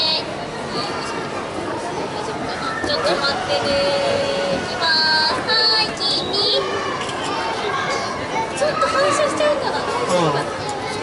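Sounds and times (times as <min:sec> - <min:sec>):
people chattering indoors: 0:00.0 - 0:11.0.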